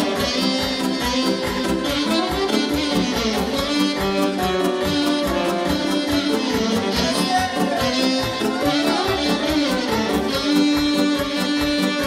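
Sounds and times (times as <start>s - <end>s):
live band dance music: 0.0s - 12.0s.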